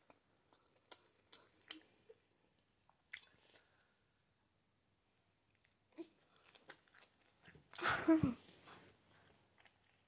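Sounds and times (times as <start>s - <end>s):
soft mouth clicks chewing: 0.0s - 2.2s, 2.9s - 3.9s, 5.5s - 7.8s, 9.1s - 10.0s.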